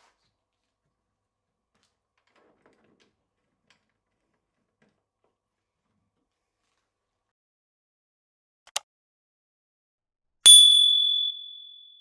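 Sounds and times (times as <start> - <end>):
faint clicks and soft knocks: 1.7 - 7.0.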